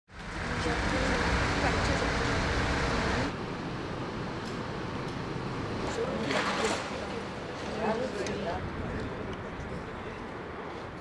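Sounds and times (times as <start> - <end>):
traffic noise and rumble: 0.1 - 11.0.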